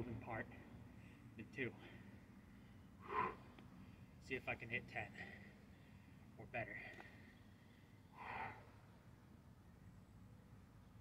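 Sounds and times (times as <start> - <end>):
man breathing through nose: 2.5 - 4.1, 7.0 - 8.7.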